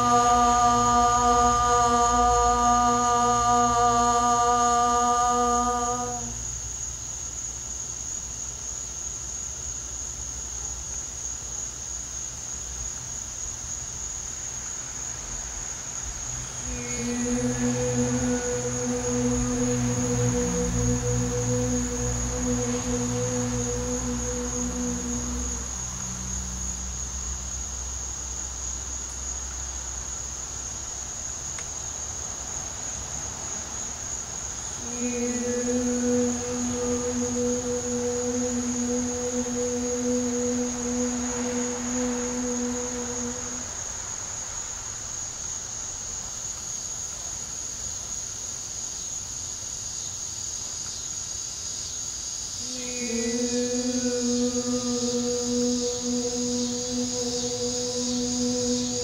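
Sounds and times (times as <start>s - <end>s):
woman chanting a steady tone: 0.0s - 6.6s, 16.1s - 27.3s, 34.6s - 44.4s, 52.6s - 59.0s
insects trilling: 0.0s - 59.0s.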